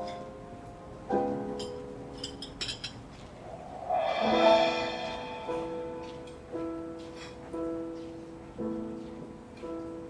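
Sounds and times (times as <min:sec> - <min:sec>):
piano playing slow song: 0:00.0 - 0:10.0.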